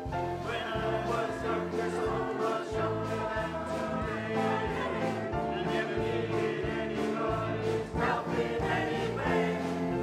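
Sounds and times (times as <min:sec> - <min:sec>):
mixed choir singing: 0:00.3 - 0:10.0.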